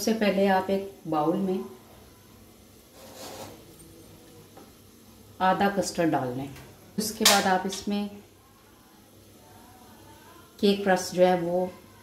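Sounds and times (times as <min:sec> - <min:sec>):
spoon scraping a pot: 0:02.9 - 0:03.8.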